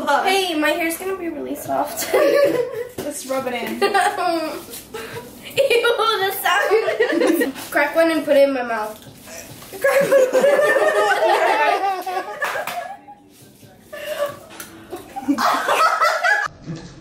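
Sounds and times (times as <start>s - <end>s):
young women laughing and giggling: 2.0s - 7.7s, 9.7s - 13.2s, 14.0s - 16.5s.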